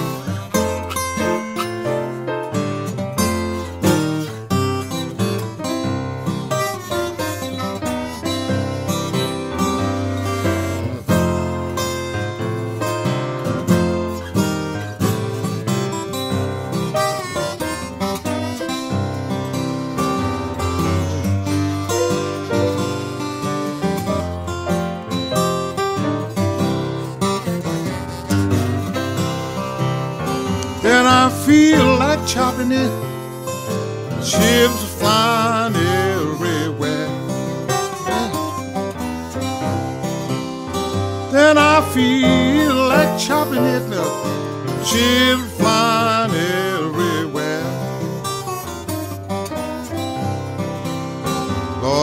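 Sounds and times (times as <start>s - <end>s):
acoustic blues guitar: 0.0s - 52.0s.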